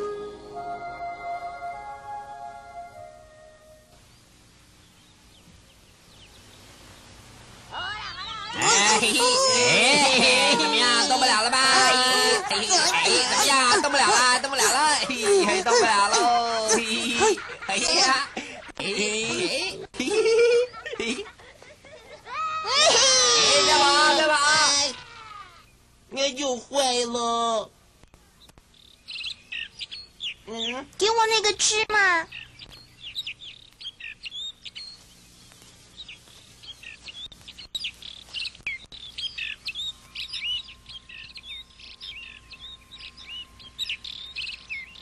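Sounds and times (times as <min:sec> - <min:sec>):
high-pitched rising cries: 0:00.0 - 0:03.9
faint hiss: 0:00.0 - 0:12.9, 0:18.3 - 0:43.4
pitched vocal calls: 0:07.8 - 0:18.2.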